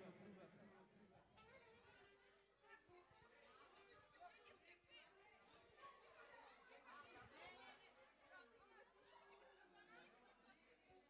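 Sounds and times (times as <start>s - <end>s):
faint chatter of many voices: 0.0s - 11.0s.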